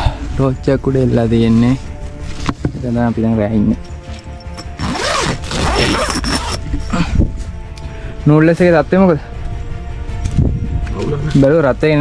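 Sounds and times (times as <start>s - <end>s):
tent zipper rasping: 4.5s - 6.8s.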